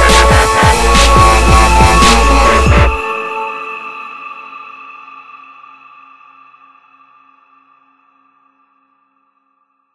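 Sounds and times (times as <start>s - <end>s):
ringing electronic chord: 0.0s - 4.0s.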